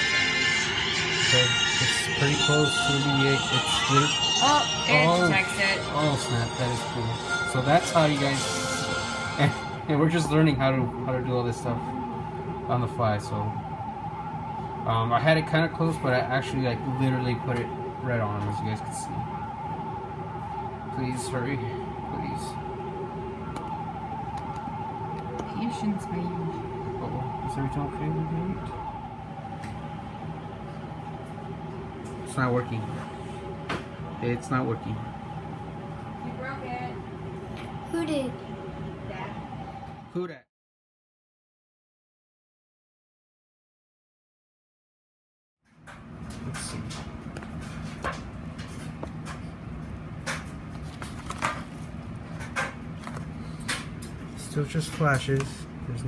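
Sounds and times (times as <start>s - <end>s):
warbling electronic tone: 0.0s - 30.6s
low room hum: 0.0s - 40.5s.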